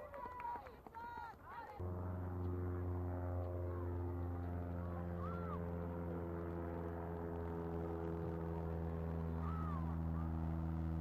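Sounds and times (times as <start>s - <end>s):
steady low hum: 1.4s - 11.0s
people shouting outdoors: 5.2s - 5.7s, 9.4s - 10.4s.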